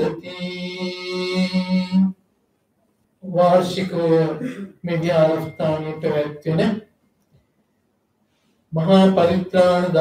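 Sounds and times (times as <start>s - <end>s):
man chanting: 0.0s - 2.2s, 3.2s - 6.9s, 8.7s - 10.0s.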